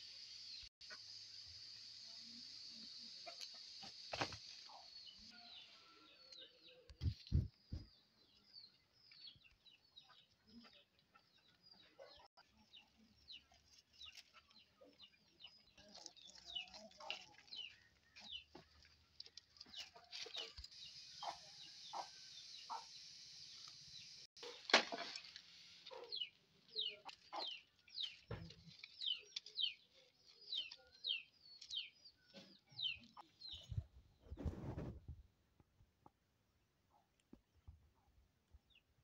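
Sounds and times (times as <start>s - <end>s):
small birds chirping: 0.0s - 24.7s, 25.5s - 35.0s.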